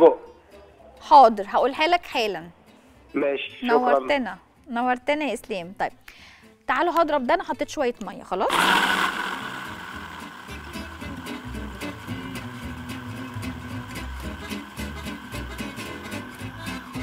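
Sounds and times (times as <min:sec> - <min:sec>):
background music: 0:00.0 - 0:17.0
hand blender motor whine: 0:08.5 - 0:17.0.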